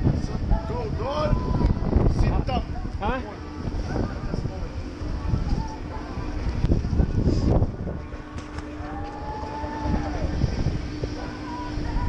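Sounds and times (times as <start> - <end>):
machinery low rumble and hum: 0.0 - 12.0
higher machine tone: 4.7 - 12.0.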